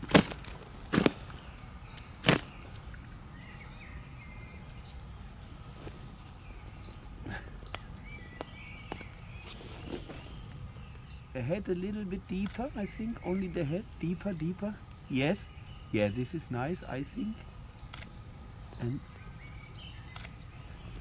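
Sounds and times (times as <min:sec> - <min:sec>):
faint bird chirps: 0:06.2 - 0:21.0.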